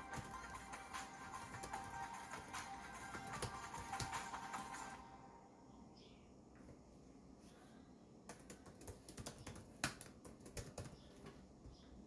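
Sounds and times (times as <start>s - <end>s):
key taps typing: 0.0s - 4.4s, 8.3s - 11.1s.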